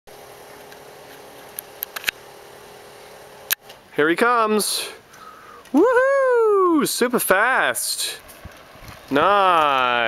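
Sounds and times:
faint steady hum and hiss: 0.1 - 10.0.

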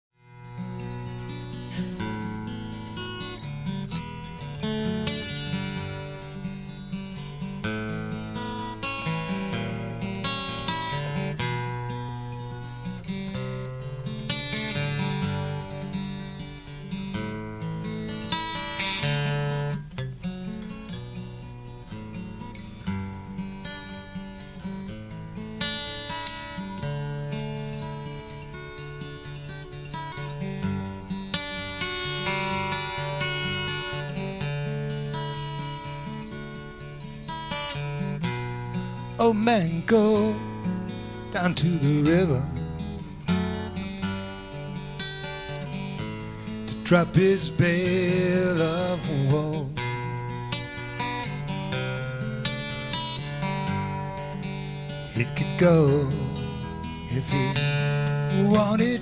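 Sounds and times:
acoustic guitar music: 0.1 - 59.0.

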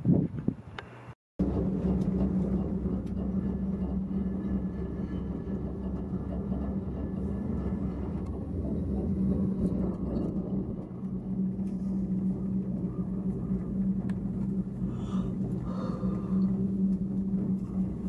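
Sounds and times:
gondola cabin rumble: 0.0 - 18.0
pitched drone: 1.4 - 18.0.

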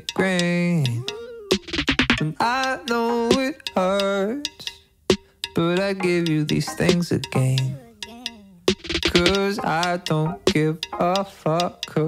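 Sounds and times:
pop song with vocals: 0.0 - 4.8, 5.6 - 8.3, 9.0 - 12.0.

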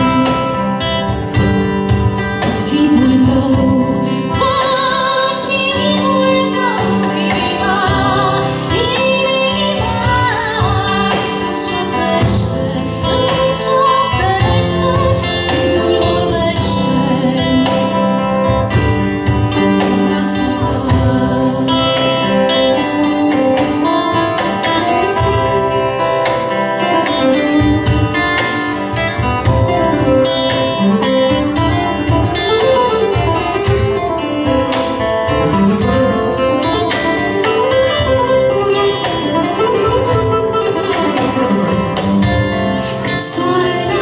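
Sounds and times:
acoustic guitar melodic lead: 0.0 - 44.0
acoustic guitar strumming chords: 0.0 - 44.0.

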